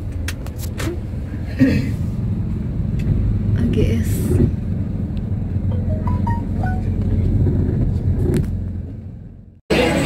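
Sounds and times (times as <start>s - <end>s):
short musical notes: 5.7s - 7.0s.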